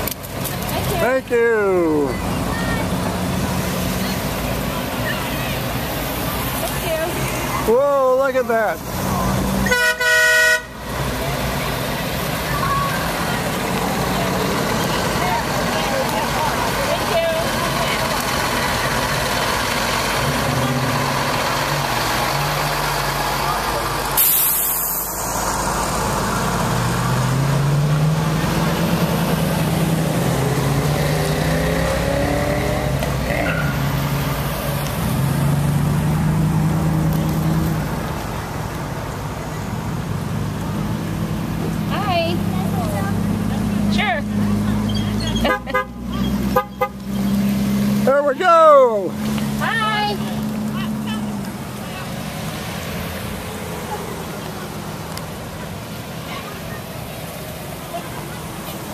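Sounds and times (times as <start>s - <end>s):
vehicle engines passing: 0.0s - 58.9s
vehicle horn: 9.6s - 10.8s, 45.5s - 47.0s
burst of hiss: 24.2s - 25.8s.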